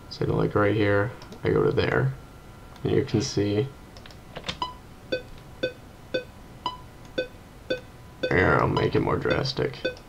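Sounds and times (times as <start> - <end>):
metronome beeps: 4.6 - 10.0.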